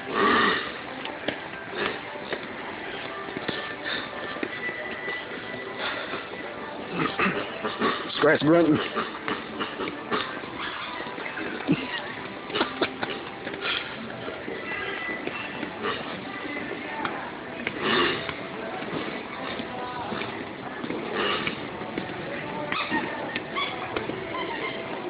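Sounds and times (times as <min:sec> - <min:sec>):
background music: 0:00.0 - 0:25.0.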